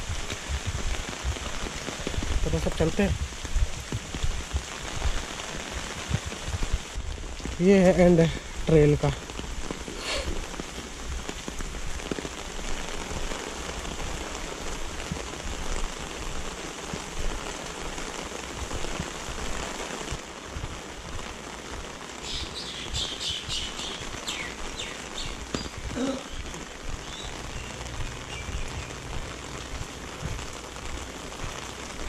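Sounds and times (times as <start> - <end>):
rain on pavement: 0.0 - 32.0
bird chirping: 22.2 - 29.0.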